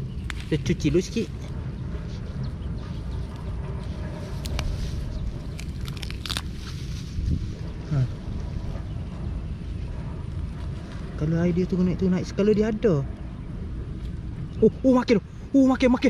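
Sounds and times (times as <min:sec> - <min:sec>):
grass and wet mud rustling: 0:00.0 - 0:11.7
steady low rumble: 0:00.0 - 0:16.0
sharp crackles: 0:00.2 - 0:01.5, 0:03.4 - 0:07.2.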